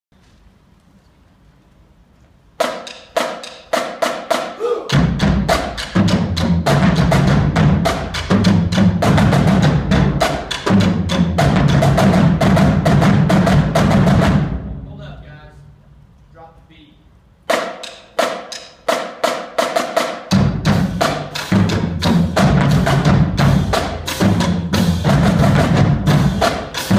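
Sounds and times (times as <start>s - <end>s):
percussion ensemble unison strokes: 2.6s - 14.6s, 17.5s - 26.9s
marching bass drums: 2.6s - 15.4s, 17.5s - 26.9s
sharp drum strikes: 17.5s - 26.9s.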